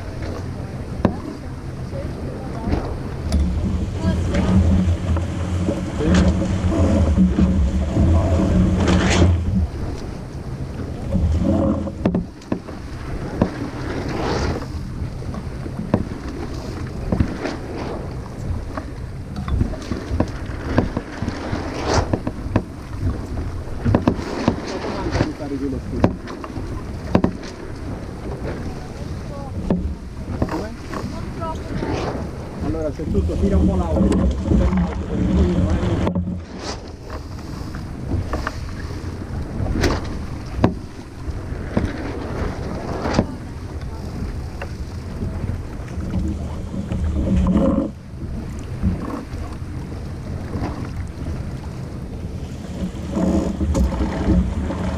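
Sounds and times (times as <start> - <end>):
water rushing along hull: 0.0 - 54.9
wind buffeting microphone: 0.0 - 54.9.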